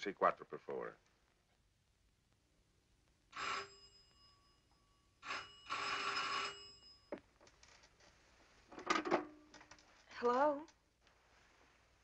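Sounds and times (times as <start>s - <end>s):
telephone bell ringing: 3.3s - 7.2s.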